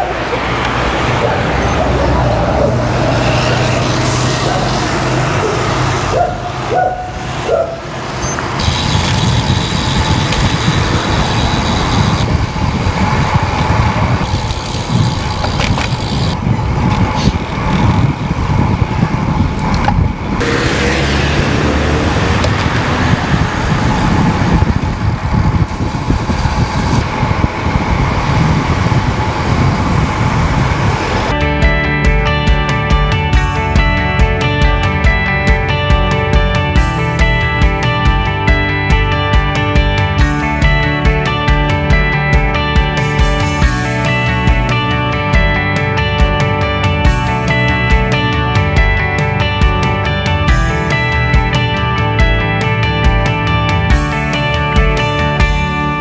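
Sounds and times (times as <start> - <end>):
bike road noise: 0.0 - 56.0
vehicles passing: 0.0 - 56.0
guitar music: 31.3 - 56.0.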